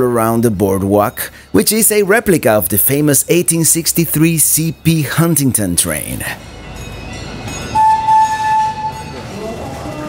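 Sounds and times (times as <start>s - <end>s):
train whistle: 7.7s - 10.0s.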